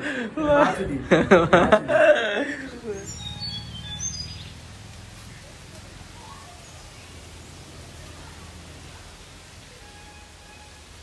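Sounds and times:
bird chirping high notes: 2.7s - 4.7s.

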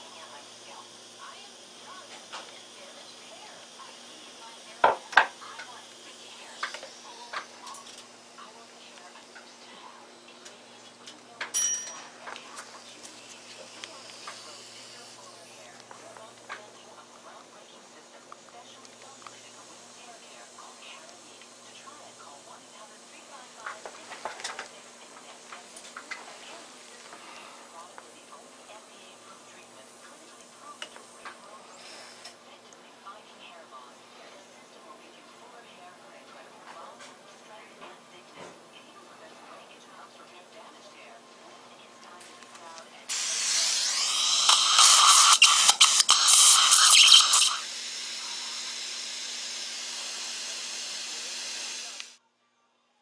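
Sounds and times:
dental drill hissing: 0.0s - 32.5s, 42.7s - 52.2s.

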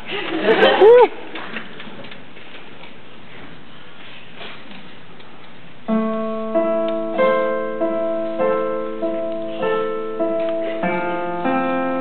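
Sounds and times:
hall room noise hiss: 0.0s - 12.0s.

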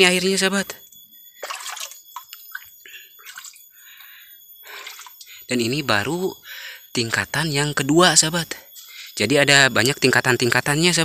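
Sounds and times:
water gurgles and plinks: 1.4s - 3.6s
water trickling into pool: 1.4s - 3.6s, 4.7s - 5.3s.

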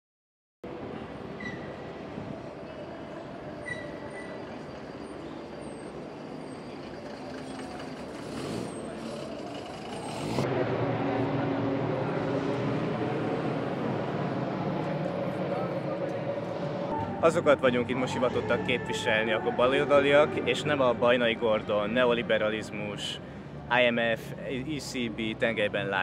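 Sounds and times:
rumble of passing vehicles: 0.7s - 26.0s
voices outdoors: 0.7s - 26.0s
short high squeaks: 3.6s - 10.3s.

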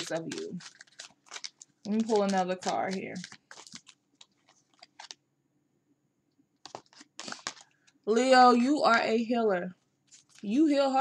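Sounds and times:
playing cards rustling and clicking: 0.0s - 5.2s, 6.6s - 8.0s, 10.1s - 10.5s.

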